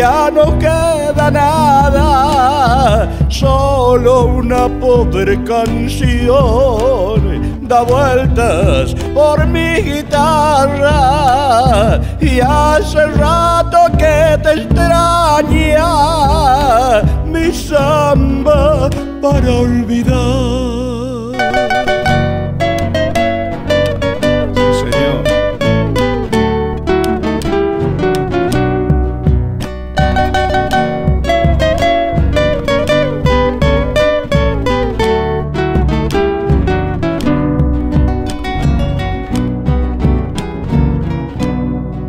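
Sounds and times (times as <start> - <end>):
acoustic guitar plucked melody: 0.0 - 42.0
low accompaniment: 0.0 - 42.0.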